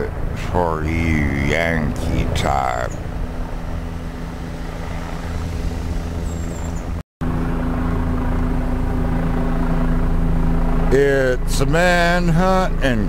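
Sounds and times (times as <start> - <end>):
road rumble: 0.0 - 13.0
vehicle engine hum: 0.0 - 13.0.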